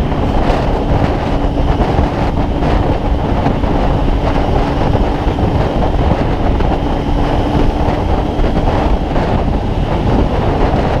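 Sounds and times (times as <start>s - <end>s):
motorcycle engine running steadily: 0.0s - 11.0s
wind rushing over microphone: 0.0s - 11.0s.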